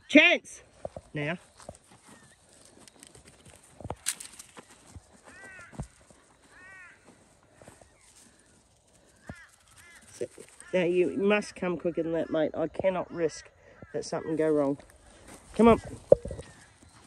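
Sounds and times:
handling knocks and rustles: 2.6 - 5.1
faint crow-like caws: 4.8 - 10.9, 13.4 - 15.5.

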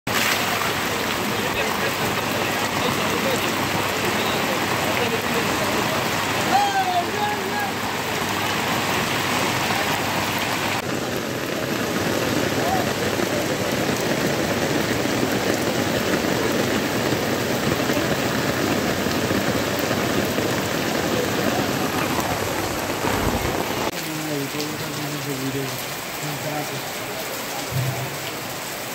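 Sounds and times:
heavy rain on pavement: 0.1 - 28.9.

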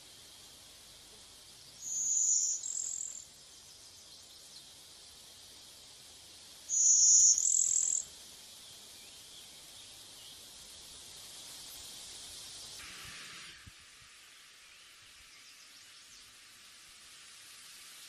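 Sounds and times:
high-pitched hiss: 0.0 - 18.0.

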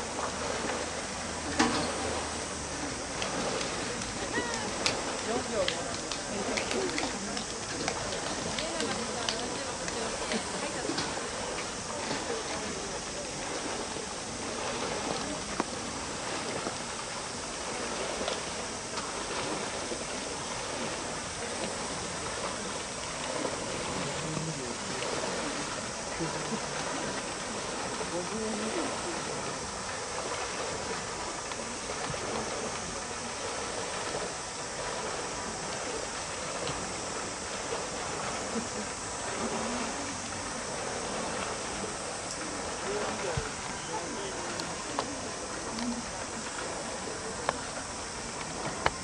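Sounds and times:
faint distant voices: 0.0 - 49.0
faint splashes: 0.0 - 49.0
pool water wash: 0.0 - 49.0.

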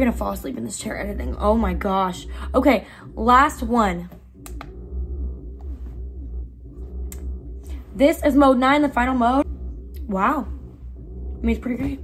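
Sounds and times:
massage chair motors humming: 0.0 - 12.0.

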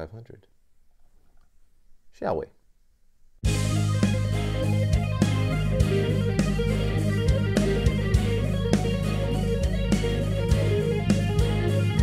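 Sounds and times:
electric guitar music: 3.4 - 12.0.

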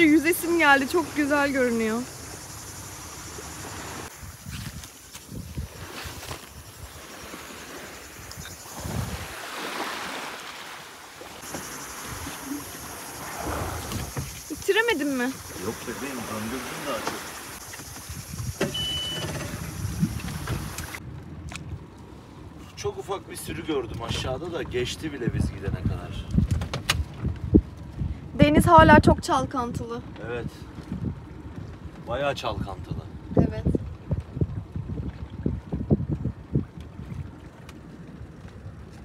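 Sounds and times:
wind and water noise: 0.0 - 39.0.

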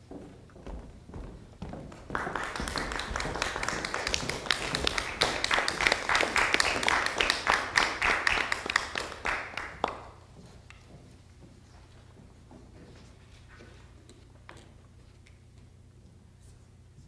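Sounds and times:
audience applauding: 2.0 - 10.2.

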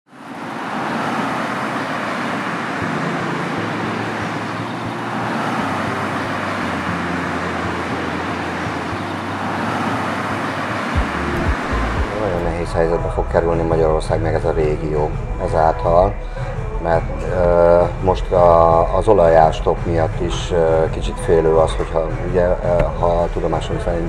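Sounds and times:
road traffic passing: 0.1 - 13.2.

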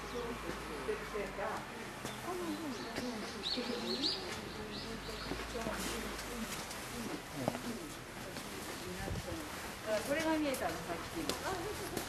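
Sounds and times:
birds chirping: 0.0 - 6.1
faint background voices: 0.0 - 12.0.

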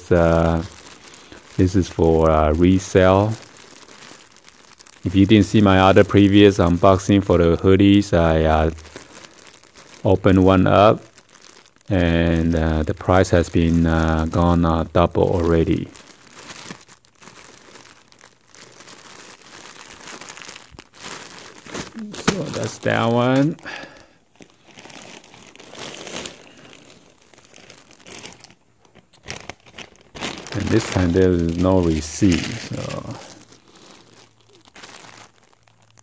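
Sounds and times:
plastic packaging crinkling: 0.0 - 36.0.

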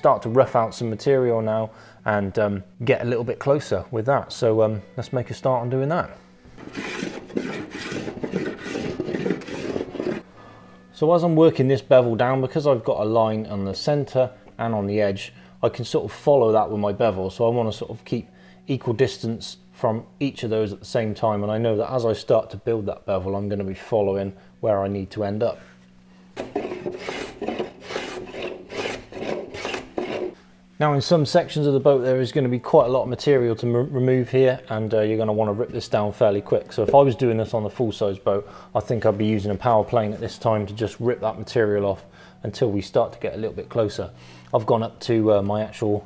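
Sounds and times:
block plane shaving wood: 6.6 - 10.2, 26.4 - 30.4.

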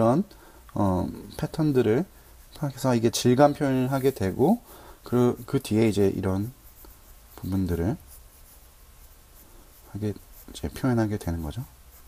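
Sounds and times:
pen scratching on paper: 1.4 - 12.0.

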